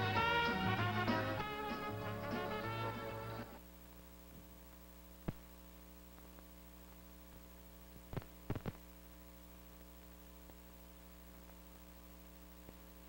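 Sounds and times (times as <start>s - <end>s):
swing music with brass: 0.0s - 3.6s
film soundtrack electrical hum: 0.0s - 13.0s.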